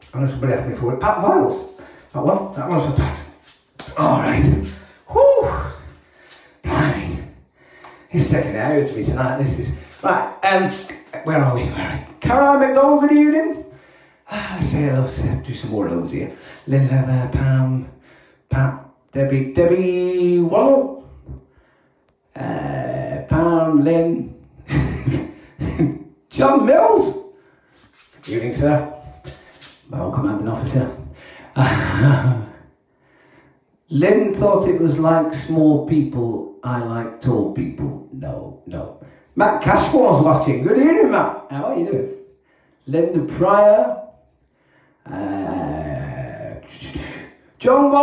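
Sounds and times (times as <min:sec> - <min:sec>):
man's voice with gliding pitch: 0:00.0 - 0:05.9, 0:06.6 - 0:07.4, 0:08.1 - 0:13.7, 0:14.3 - 0:21.1, 0:26.3 - 0:27.2, 0:28.2 - 0:29.3, 0:33.9 - 0:42.1
man making vocal sounds: 0:03.8 - 0:06.0, 0:06.6 - 0:07.4, 0:22.4 - 0:23.8, 0:45.1 - 0:48.0.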